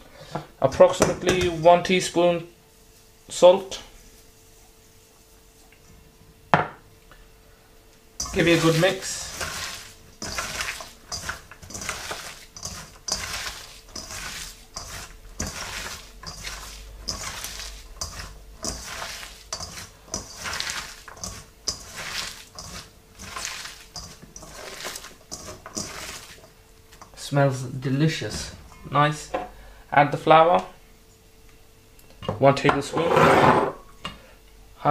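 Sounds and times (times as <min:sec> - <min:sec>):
hands tossing chopped vegetables: 0:08.2 - 0:27.3, 0:28.1 - 0:28.9.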